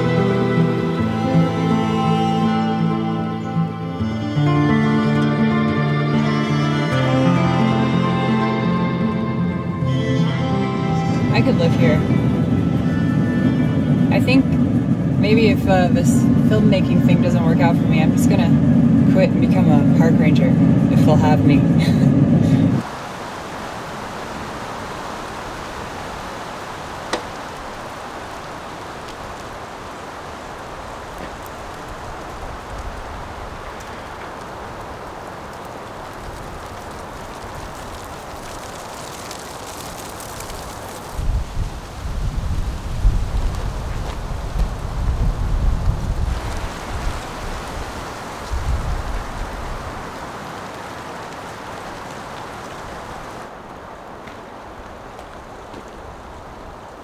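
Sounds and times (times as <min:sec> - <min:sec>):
wind rustling leaves: 0:00.0 - 0:57.0
wind gusts buffeting microphone: 0:11.2 - 0:57.0.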